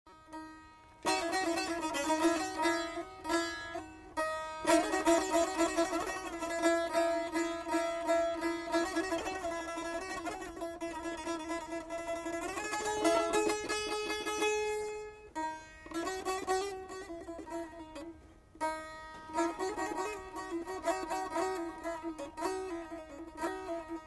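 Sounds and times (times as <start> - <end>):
plucked and strummed lute: 1.0 - 24.0.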